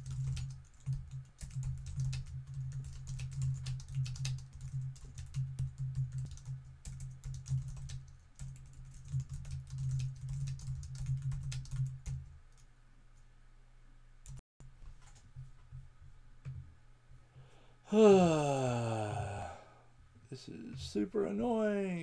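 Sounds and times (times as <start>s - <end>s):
typing on computer keyboard: 0.0s - 12.7s.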